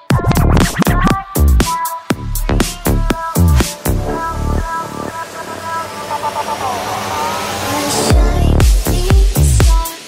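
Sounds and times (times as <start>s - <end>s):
rising noise sweep: 2.3s - 9.4s.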